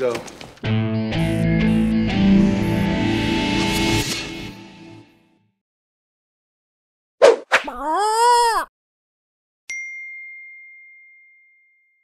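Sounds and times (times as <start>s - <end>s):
high bell-like ding: 9.7s - 12.0s.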